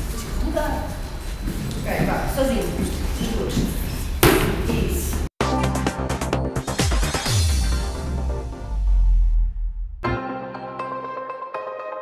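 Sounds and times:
kick hitting padded mitt: 4.2 - 4.7.

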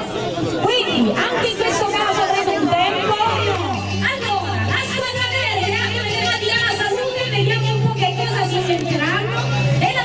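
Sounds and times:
group chatter: 0.0 - 10.0.

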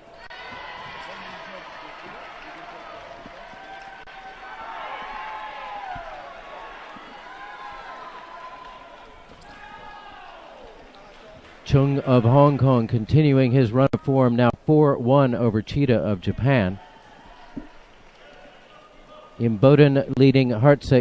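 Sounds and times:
distant overlapping voices: 0.0 - 14.5, 15.4 - 21.0.

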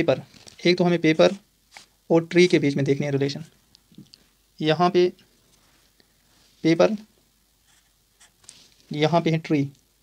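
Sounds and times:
marker drawing on paper: 7.6 - 8.5.

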